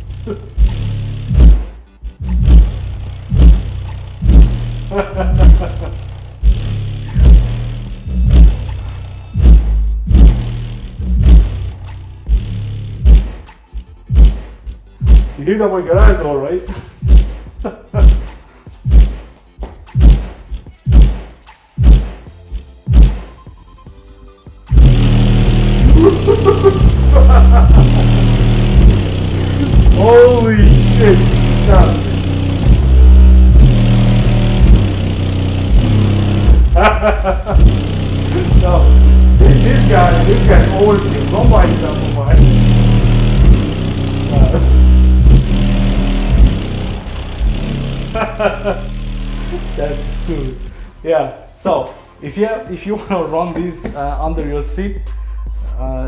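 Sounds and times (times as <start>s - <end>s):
trap music with heavy bass: 0.0s - 56.0s.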